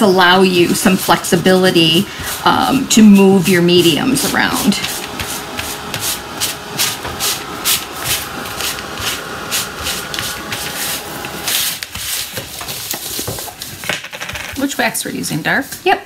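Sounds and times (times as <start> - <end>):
gloved hand scrubbing fabric: 0.0 - 13.8.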